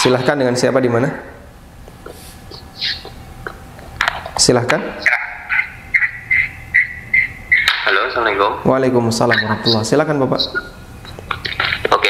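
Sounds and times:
caller's voice over phone: 4.9 - 6.5, 7.6 - 10.7.

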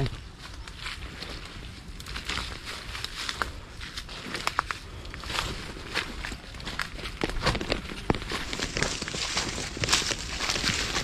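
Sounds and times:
footsteps crunching on dry leaves: 0.0 - 11.0.

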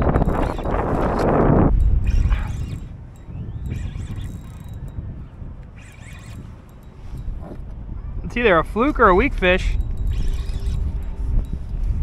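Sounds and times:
spinning reel clicking: 0.0 - 7.5, 9.4 - 12.0
wind on microphone: 0.0 - 12.0.

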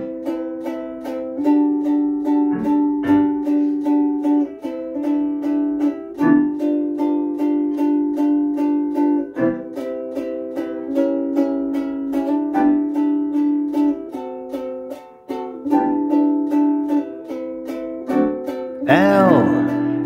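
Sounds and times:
ukulele strumming chords: 0.0 - 20.0
piano chords: 18.1 - 20.0.

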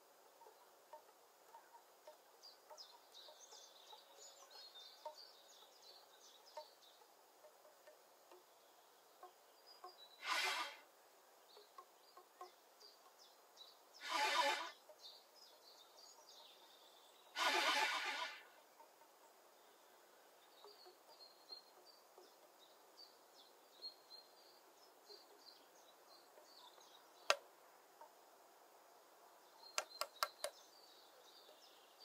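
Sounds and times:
small birds chirping: 0.0 - 32.0.

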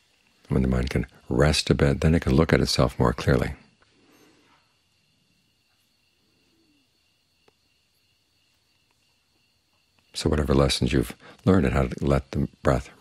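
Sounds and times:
thin high-pitched hum: 0.0 - 13.0.

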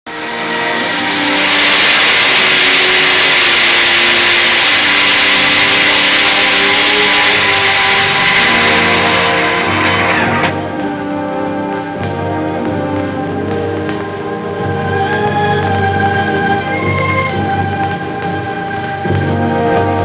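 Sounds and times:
rushing roar: 0.1 - 20.0.

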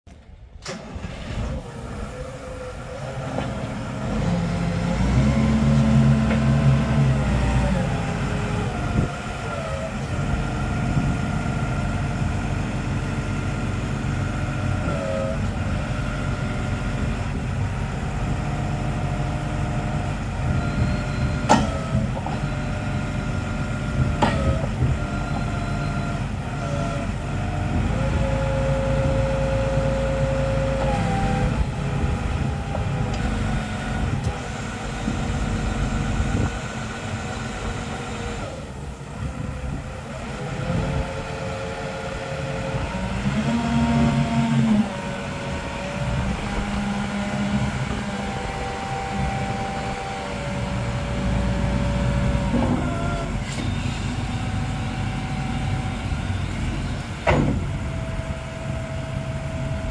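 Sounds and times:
diesel forklift engine rumbling: 0.1 - 59.9
hydraulic pump whine: 0.6 - 59.9.

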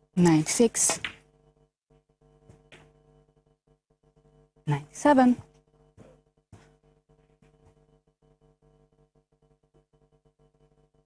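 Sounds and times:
low steady background tone: 0.0 - 11.0.

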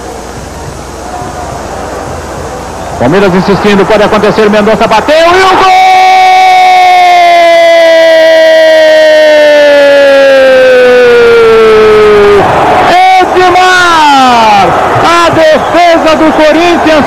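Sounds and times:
commentator shouting goal: 3.0 - 6.4.

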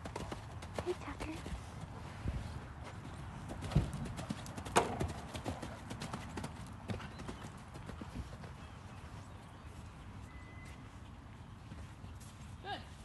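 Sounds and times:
horse hoofbeats on sand: 0.0 - 13.0.

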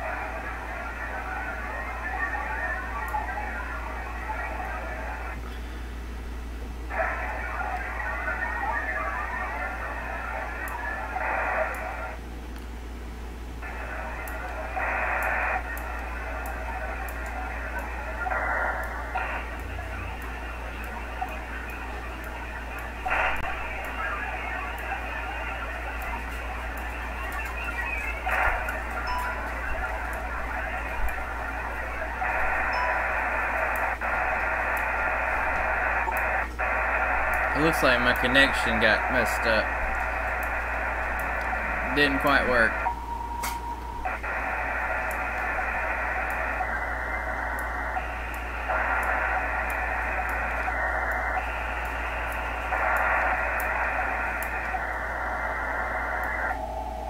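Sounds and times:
hissy radio data tones: 0.0 - 57.0
steady low hum: 0.0 - 57.0.

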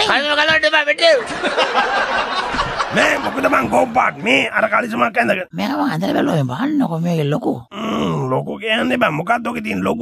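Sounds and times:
man talking: 2.8 - 10.0.

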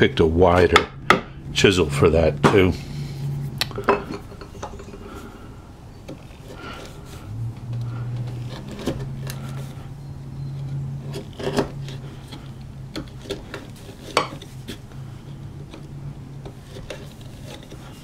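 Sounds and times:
low steady hum: 0.0 - 18.0
chisel scraping and clicking in wood: 7.8 - 9.8, 10.6 - 18.0.

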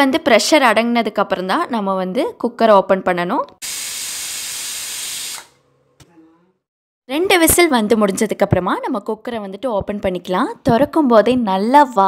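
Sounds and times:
pressure cooker whistling: 3.6 - 5.6.

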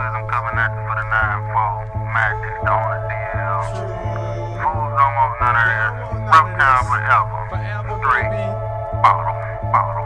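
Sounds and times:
hip-hop beat with bass: 0.0 - 10.0
sung vocal line: 2.1 - 10.0
person rapping: 2.8 - 10.0.

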